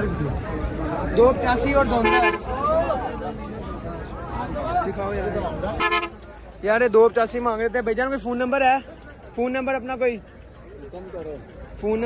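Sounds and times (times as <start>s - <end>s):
chatter of men's voices: 0.0s - 12.0s
vehicle horn honking: 1.9s - 2.5s, 5.8s - 6.2s.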